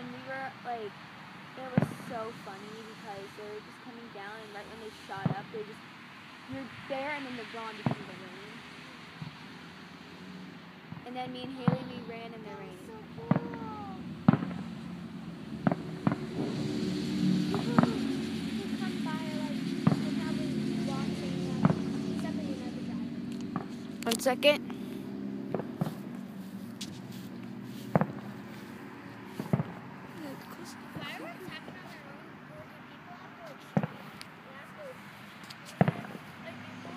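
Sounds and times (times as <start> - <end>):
faint outdoor background noise: 0.0 - 36.9
distant fireworks bangs: 0.9 - 24.6, 25.2 - 32.0, 33.6 - 36.9
steady low hum: 9.7 - 32.3.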